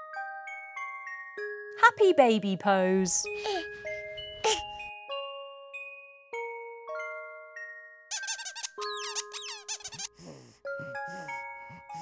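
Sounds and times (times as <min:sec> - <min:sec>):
cartoon squeaks: 0:08.1 - 0:10.4.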